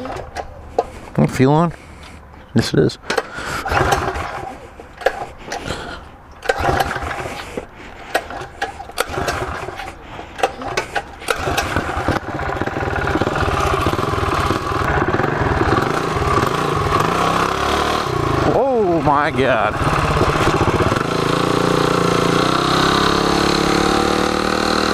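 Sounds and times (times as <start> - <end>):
minibike engine idling: 3.1 - 4.6, 8.2 - 23.9
pull-start knocks and tugs: 3.1 - 5.8, 6.4 - 24.9.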